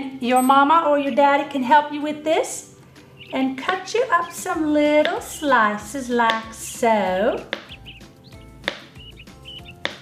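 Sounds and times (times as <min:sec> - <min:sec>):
knife tapping cutting board: 0:07.4 - 0:07.8, 0:08.6 - 0:09.0, 0:09.7 - 0:10.0.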